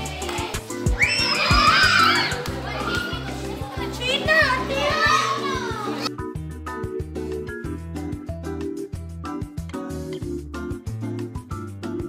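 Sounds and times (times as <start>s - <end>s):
music with steady beat: 0.0s - 3.8s, 6.0s - 12.0s
children shouting and chattering: 0.0s - 6.1s.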